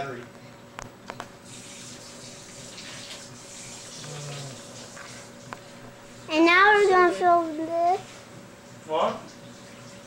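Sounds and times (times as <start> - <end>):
running water hiss: 1.4 - 5.5.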